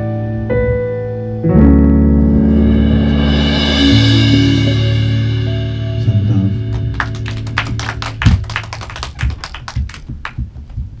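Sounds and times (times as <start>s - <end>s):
low thumps: 0.5s - 11.0s
band chord ringing out: 1.4s - 8.4s.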